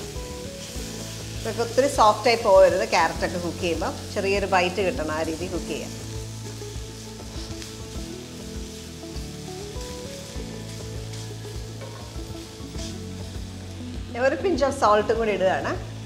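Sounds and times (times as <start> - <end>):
vegetables sizzling in a pan: 0.0 - 16.0.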